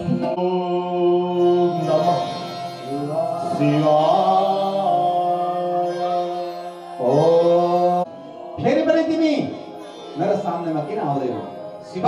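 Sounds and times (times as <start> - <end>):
devotional chant singing: 0.0 - 12.0.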